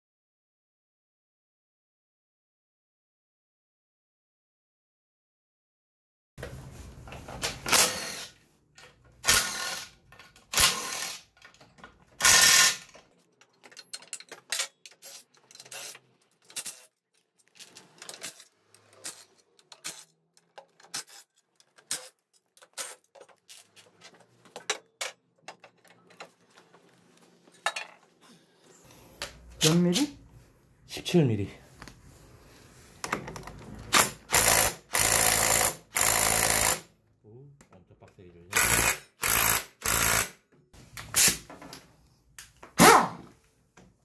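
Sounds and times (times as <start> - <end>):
cordless driver bursts: 12.2 - 12.8, 34.0 - 36.8, 38.6 - 40.3.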